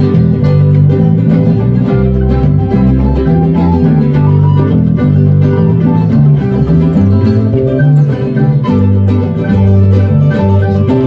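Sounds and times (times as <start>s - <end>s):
acoustic guitar: 0.0s - 11.0s
mandolin: 0.0s - 11.0s.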